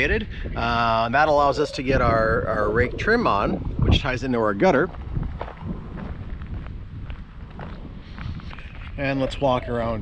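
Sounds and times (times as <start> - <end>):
wind rumble on microphone: 0.0 - 10.0
footsteps on dirt ground: 4.6 - 9.6.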